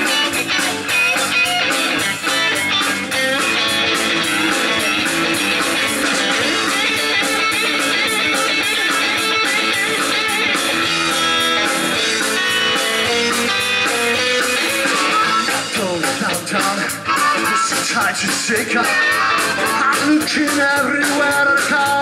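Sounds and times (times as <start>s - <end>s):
bass guitar: 0.0s - 22.0s
electric guitar lead: 0.0s - 22.0s
steady drum beat: 0.0s - 22.0s.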